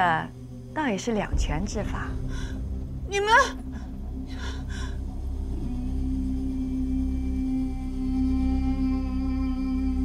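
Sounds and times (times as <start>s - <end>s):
sustained music drone: 0.0s - 10.0s
held low note: 1.3s - 10.0s.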